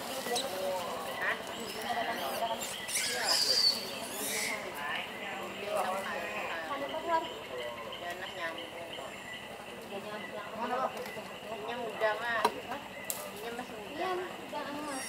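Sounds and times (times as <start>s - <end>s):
people talking quietly: 0.0s - 15.0s.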